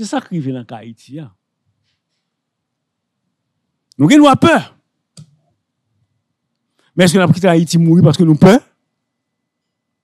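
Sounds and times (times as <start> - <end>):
man speaking into a microphone: 0.0 - 1.4, 3.9 - 4.8, 6.9 - 8.8
faint low hum: 0.0 - 10.0
microphone click: 5.1 - 5.5.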